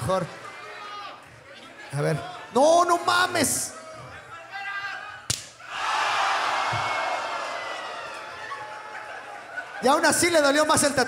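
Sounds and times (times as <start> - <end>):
crowd noise: 0.0 - 11.0
open-hand slap on body: 5.3 - 5.6.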